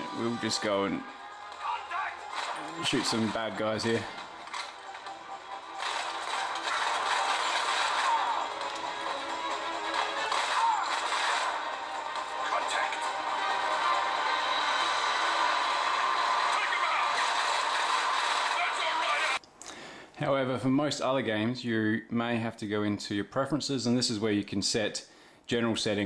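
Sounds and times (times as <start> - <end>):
game music: 0.0 - 19.4
game gunfire: 5.8 - 9.0, 9.9 - 11.8.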